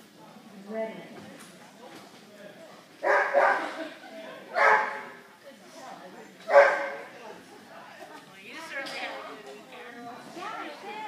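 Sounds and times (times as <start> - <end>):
dog barking: 3.0 - 3.7, 4.6 - 5.1, 6.5 - 7.1.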